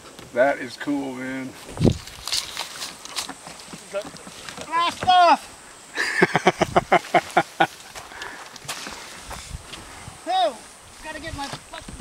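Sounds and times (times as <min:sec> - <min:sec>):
person exclaiming: 0:04.7 - 0:05.4
person laughing: 0:05.9 - 0:07.9.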